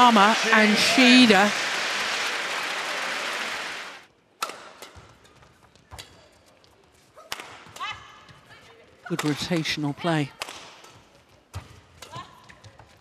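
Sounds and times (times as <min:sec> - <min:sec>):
crowd applause: 0:00.0 - 0:04.1
racket striking shuttlecock: 0:04.4 - 0:05.2.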